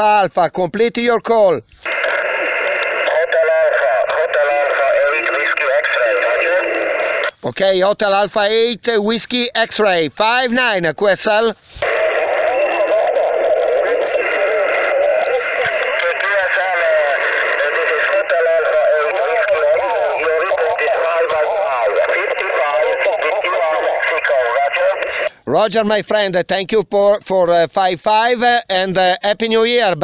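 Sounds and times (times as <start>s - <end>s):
radio hiss: 1.8s - 7.5s, 11.4s - 25.6s
tinny radio voice: 1.9s - 7.3s, 11.8s - 25.4s.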